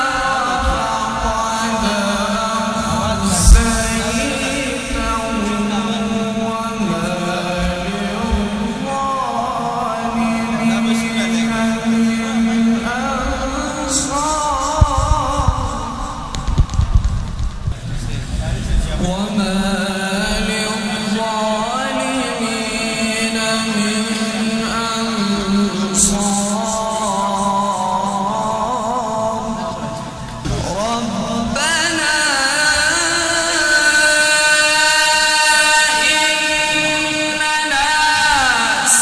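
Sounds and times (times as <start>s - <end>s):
man reciting melodically: 0.0s - 16.6s, 18.2s - 39.0s
low thuds and rumble: 2.8s - 5.7s, 14.8s - 18.2s.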